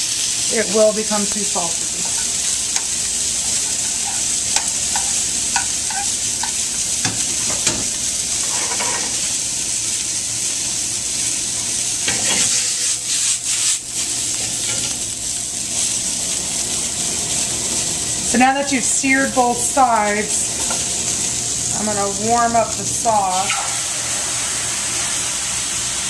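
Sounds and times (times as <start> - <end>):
seafood sizzling in a pan: 0.0 - 26.0.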